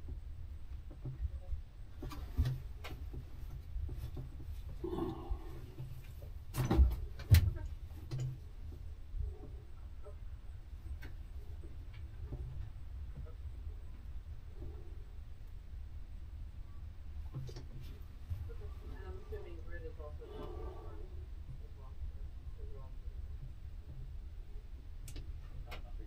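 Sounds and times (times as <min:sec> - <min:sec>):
steady low rumble: 0:00.0 - 0:26.0
knocks and clicks in cockpit: 0:25.0 - 0:26.0.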